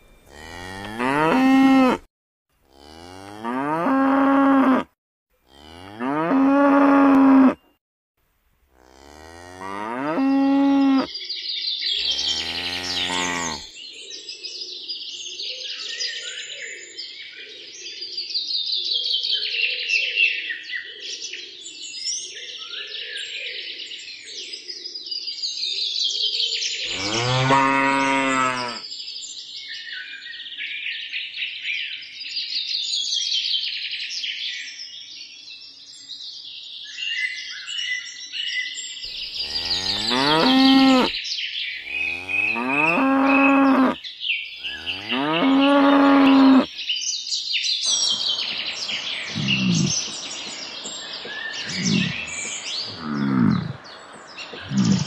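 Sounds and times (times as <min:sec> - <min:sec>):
birds chirping: 0:00.0 - 0:02.0, 0:11.8 - 0:13.7, 0:26.9 - 0:28.8, 0:39.1 - 0:55.0
cows mooing: 0:00.3 - 0:02.1, 0:02.7 - 0:04.9, 0:05.5 - 0:07.6, 0:08.8 - 0:11.1, 0:12.0 - 0:13.7, 0:26.9 - 0:28.8, 0:39.2 - 0:41.2, 0:41.8 - 0:44.0, 0:44.6 - 0:46.7, 0:49.3 - 0:50.0, 0:51.7 - 0:53.8, 0:54.6 - 0:55.0.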